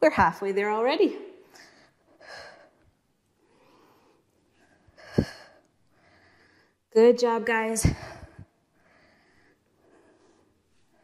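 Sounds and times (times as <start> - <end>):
woman breathing hard: 1.5 - 6.9, 7.8 - 11.0.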